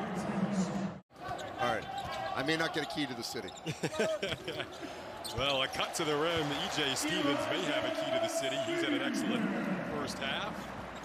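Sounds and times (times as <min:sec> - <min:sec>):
arena noise: 0:00.0 - 0:11.0
commentator's voice: 0:05.8 - 0:10.6.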